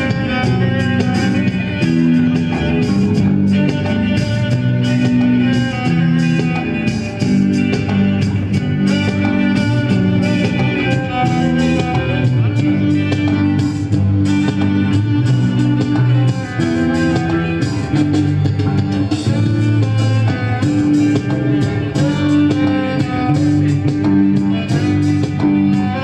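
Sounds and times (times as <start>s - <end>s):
bowed cello melody: 0.0s - 26.0s
guitar: 0.0s - 26.0s
percussion: 0.0s - 26.0s.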